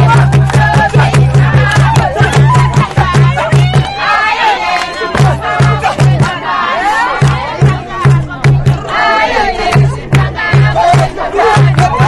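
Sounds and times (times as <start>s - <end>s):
hand drum beating: 0.0s - 4.0s, 7.2s - 8.9s
group singing and shouting: 0.0s - 12.0s.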